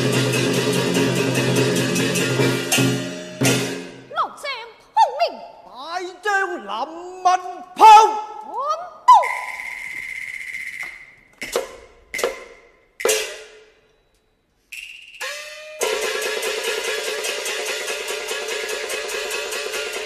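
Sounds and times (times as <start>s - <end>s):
ringing percussion strikes: 0.0s - 4.0s, 9.2s - 14.1s, 14.7s - 20.0s.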